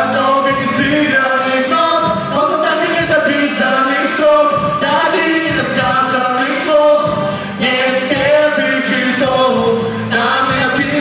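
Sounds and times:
song with sung vocals: 0:00.0 - 0:11.0.

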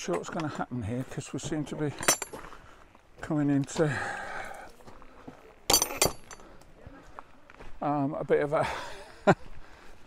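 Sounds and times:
sharp metallic clinks: 0:02.0 - 0:02.4, 0:05.7 - 0:06.4.

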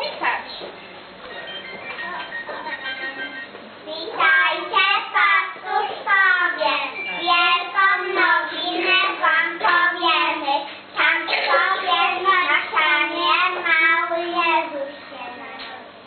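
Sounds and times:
children singing a carol: 0:11.0 - 0:13.2.

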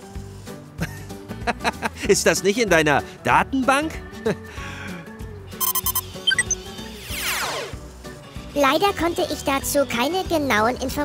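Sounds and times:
light background music: 0:00.0 - 0:11.0
electronic beeps: 0:05.6 - 0:06.7.

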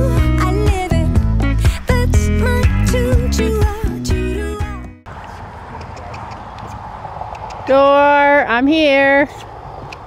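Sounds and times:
rushing outdoor noise: 0:05.1 - 0:10.0.

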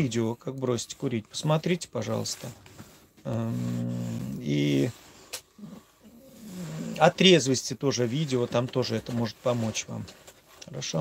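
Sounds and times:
man murmuring: 0:03.2 - 0:05.0.

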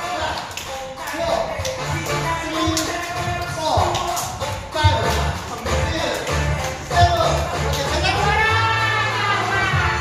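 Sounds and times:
music with heavy bass beat: 0:01.1 - 0:10.0.

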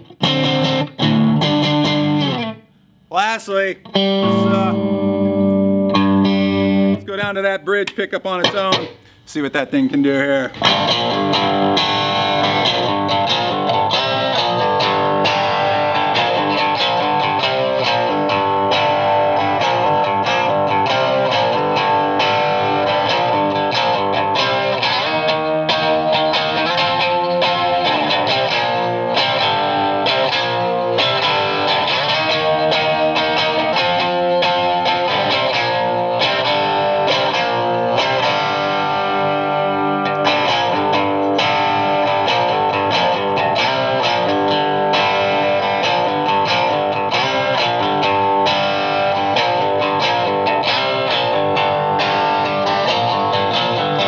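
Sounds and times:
electric guitar playing: 0:00.0 - 0:09.2, 0:10.5 - 0:54.0.

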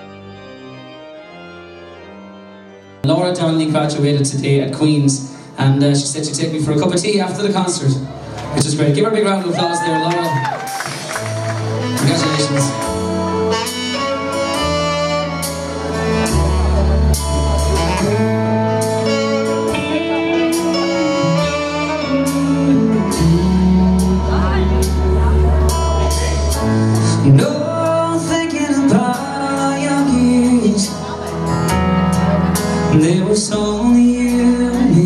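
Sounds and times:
band playing slow ballad: 0:00.0 - 0:35.0
deep bass note: 0:11.3 - 0:28.1
man singing: 0:27.0 - 0:31.3, 0:32.9 - 0:35.0.

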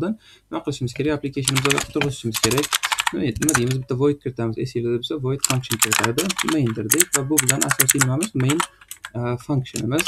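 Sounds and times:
man speaking: 0:00.0 - 0:10.0
keyboard typing: 0:01.4 - 0:03.9, 0:05.4 - 0:10.0.

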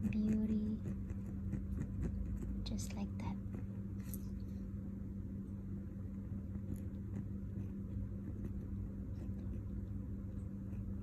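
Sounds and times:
pen scratching on paper: 0:00.0 - 0:02.8
low electrical hum: 0:00.0 - 0:11.0.

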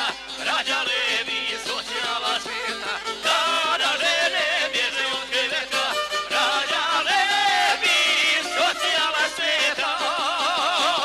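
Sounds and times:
live folk music on plucked lute: 0:00.0 - 0:11.0.

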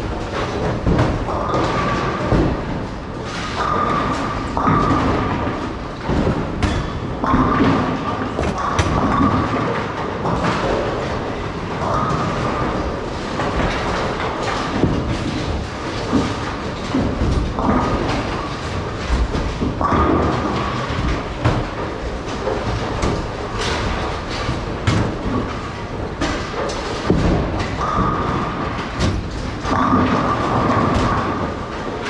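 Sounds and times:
bowling balls rolling: 0:00.0 - 0:32.0
bowling pins clattering: 0:00.0 - 0:32.0
din of busy bowling centre: 0:00.0 - 0:32.0.

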